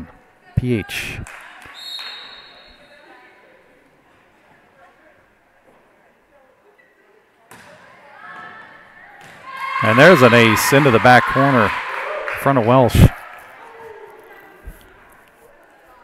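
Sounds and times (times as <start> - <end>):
players and spectators voices: 0.0 - 16.0
volleyball thuds in gym: 7.5 - 8.5.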